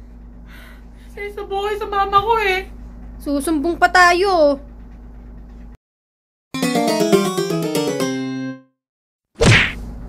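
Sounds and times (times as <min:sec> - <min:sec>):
music sting with held chord: 0:06.6 - 0:08.7
sudden loud whack: 0:09.4 - 0:09.8.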